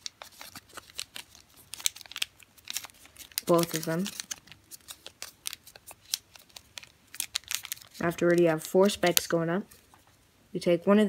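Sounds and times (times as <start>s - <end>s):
paper crinkling while folded: 0.0s - 10.0s.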